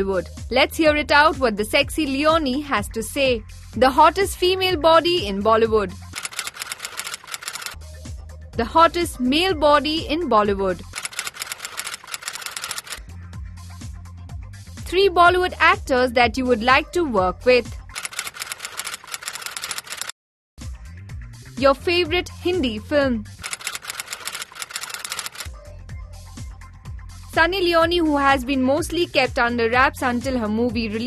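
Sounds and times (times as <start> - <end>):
typewriter clicking: 6.2 - 7.8, 11.0 - 13.0, 18.0 - 20.1, 23.5 - 25.5.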